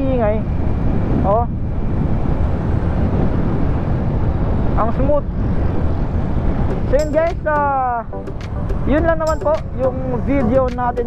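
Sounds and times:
wind and road rush: 0:00.0 - 0:11.0.

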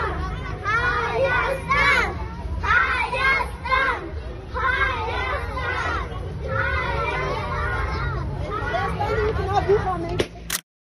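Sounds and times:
children chattering and calling: 0:00.0 - 0:10.3
low street rumble: 0:00.0 - 0:10.5.

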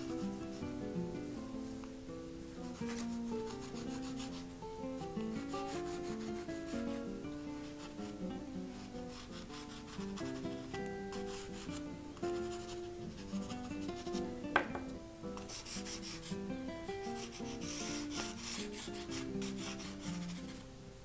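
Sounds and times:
soft plucked background music: 0:00.0 - 0:21.0
pastel stick scraping on paper: 0:02.7 - 0:04.4, 0:17.1 - 0:20.6.

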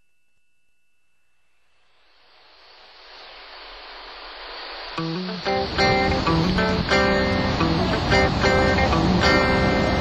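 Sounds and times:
hiss-like noise: 0:01.3 - 0:10.0
strummed guitar music: 0:05.0 - 0:10.0.

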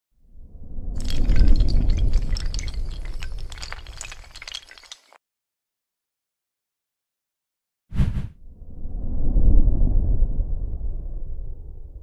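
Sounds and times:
low rumble: 0:08.0 - 0:12.0.

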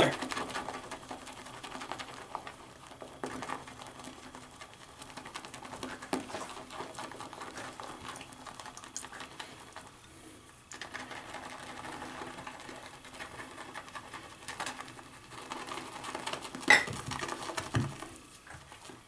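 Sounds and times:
shaving brush swishing lather: 0:00.0 - 0:10.0.

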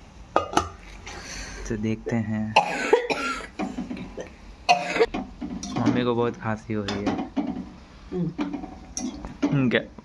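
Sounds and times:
woman coughing: 0:02.6 - 0:03.6, 0:04.7 - 0:05.1.

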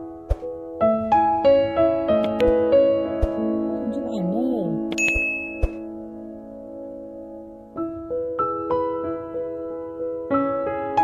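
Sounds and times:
bell-like ding: 0:04.9 - 0:05.8.

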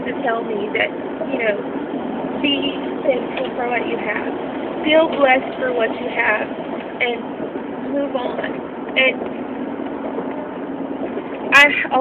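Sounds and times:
woman's voice: 0:00.0 - 0:01.7, 0:02.4 - 0:09.2, 0:11.5 - 0:12.0
car cabin hum: 0:00.0 - 0:12.0.

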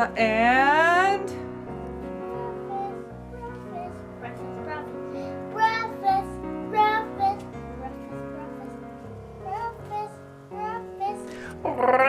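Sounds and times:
background music: 0:00.0 - 0:12.0
young child singing: 0:02.2 - 0:11.6.

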